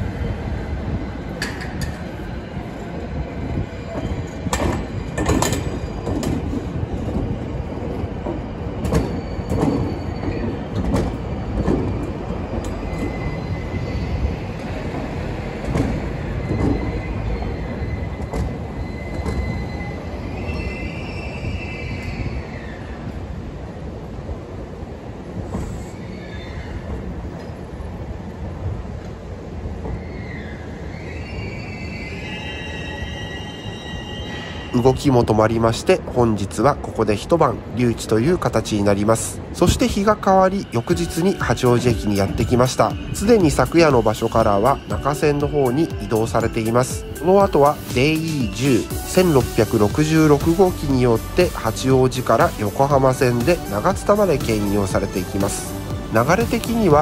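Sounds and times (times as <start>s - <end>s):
train wheels squealing: 1.1s - 23.2s, 25.5s - 27.6s, 29.8s - 35.3s, 39.7s - 57.0s.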